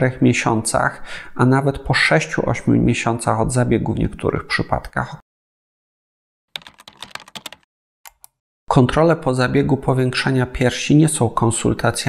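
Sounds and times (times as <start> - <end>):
keyboard key clicks: 6.6 - 8.4.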